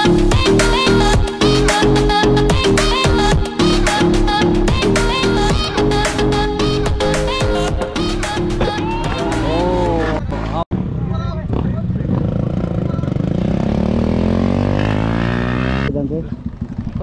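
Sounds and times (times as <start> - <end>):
music with singing: 0.0 - 10.6
motorcycle engines running: 10.2 - 17.0.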